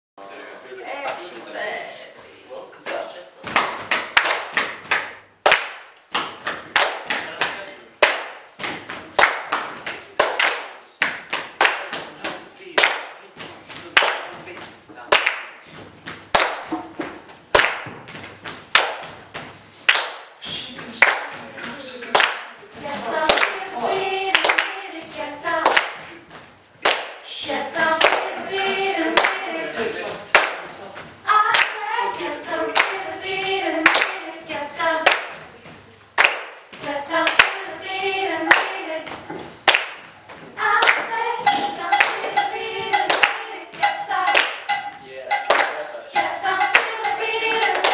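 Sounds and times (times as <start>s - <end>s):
group hand clapping: 2.9s - 47.9s
voices singing: 20.4s - 26.3s, 27.2s - 35.8s, 36.7s - 39.4s, 40.5s - 47.9s.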